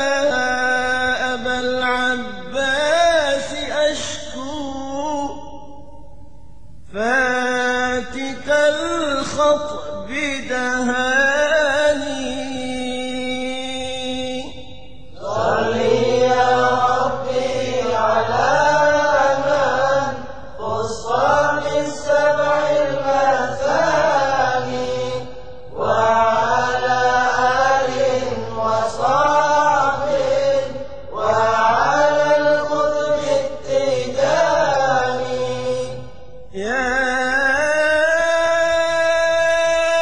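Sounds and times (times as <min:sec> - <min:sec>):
person chanting: 0:00.0 - 0:06.0, 0:06.9 - 0:40.0.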